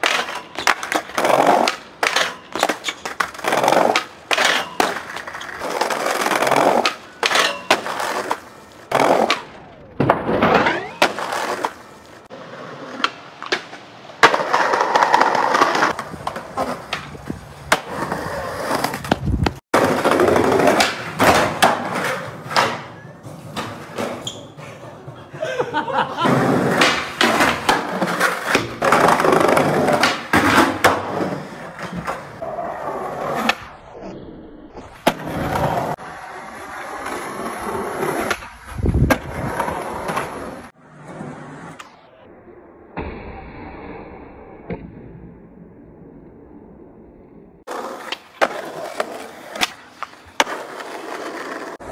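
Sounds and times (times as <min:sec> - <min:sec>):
skateboard clacks: 0:00.0 - 0:25.4, 0:26.3 - 0:32.4, 0:47.7 - 0:51.9
skateboard grinding along rail: 0:00.0 - 0:25.4, 0:26.1 - 0:42.1, 0:47.6 - 0:51.9
skateboard wheels rolling: 0:00.0 - 0:44.0, 0:44.6 - 0:51.9
skateboard landing thud: 0:12.9 - 0:24.2
skateboard pop: 0:26.3 - 0:32.2, 0:47.7 - 0:50.6.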